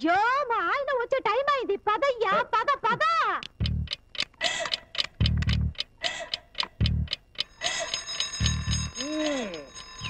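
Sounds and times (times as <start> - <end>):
film music with low drum beats: 3.5 - 4.1, 5.0 - 6.0, 6.6 - 7.6, 8.4 - 9.0
alarm clock ringing: 7.4 - 10.0.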